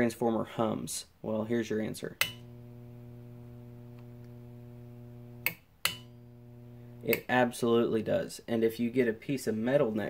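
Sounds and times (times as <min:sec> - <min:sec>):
switch click: 0:05.4 - 0:06.1.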